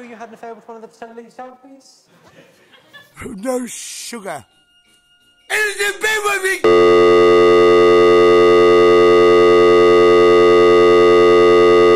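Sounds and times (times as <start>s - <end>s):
buzzy electronic drone: 6.7s - 11.9s.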